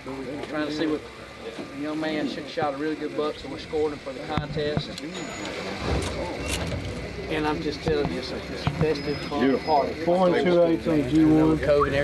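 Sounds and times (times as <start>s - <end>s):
background chatter: 0.0s - 12.0s
vehicle engine rumble: 3.2s - 12.0s.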